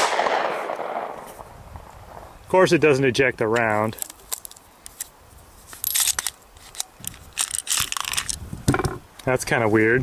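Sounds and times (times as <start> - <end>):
small clicks and rubbing: 3.5 - 9.3.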